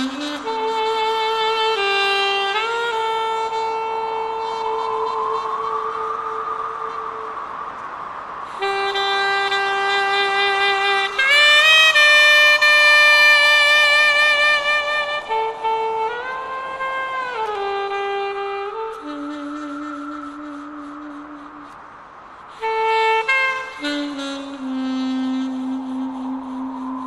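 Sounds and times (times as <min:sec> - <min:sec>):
reed wind instrument melody: 0:00.0 - 0:27.0.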